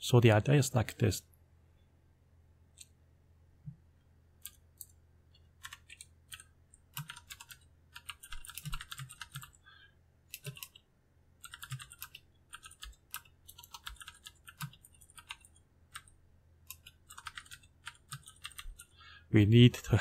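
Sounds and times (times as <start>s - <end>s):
computer keyboard typing: 4.4s - 9.6s, 10.3s - 19.0s.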